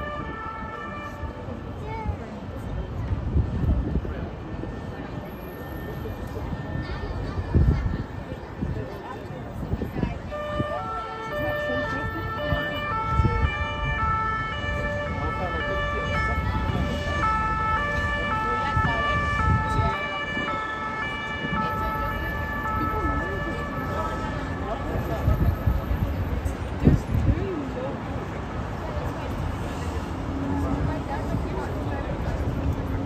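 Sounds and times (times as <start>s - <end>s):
two-tone emergency siren: 0.0s - 1.5s, 4.6s - 8.0s, 10.1s - 26.2s
city traffic hum: 0.0s - 33.0s.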